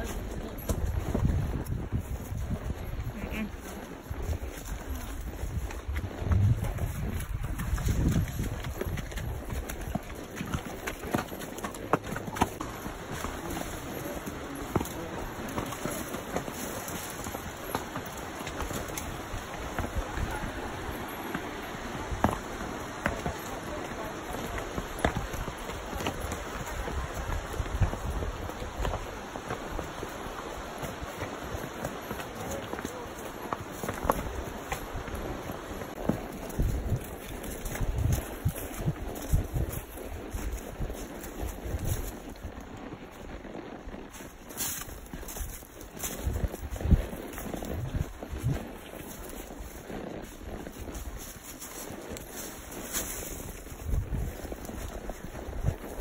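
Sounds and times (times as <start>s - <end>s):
wind buffeting microphone: 0.0s - 10.1s, 16.9s - 31.5s, 34.3s - 42.6s, 45.1s - 49.6s, 50.2s - 56.0s
hooves stepping through dry leaves: 0.0s - 43.4s, 44.0s - 56.0s
rushing creek: 0.0s - 56.0s.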